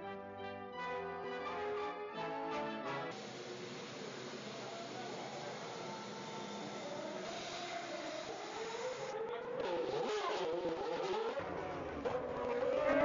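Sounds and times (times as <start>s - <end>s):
race car engines passing: 3.6s - 13.0s.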